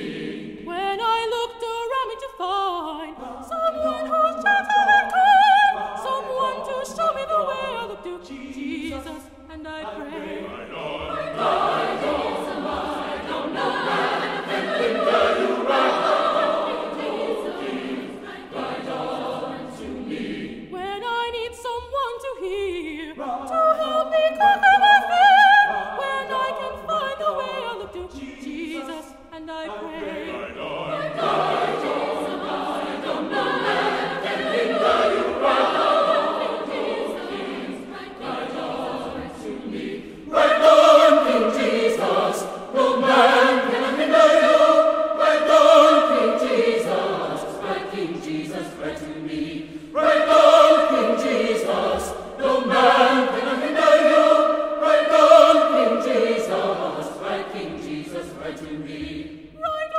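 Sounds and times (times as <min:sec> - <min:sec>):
choir singing: 0:00.0 - 0:59.9.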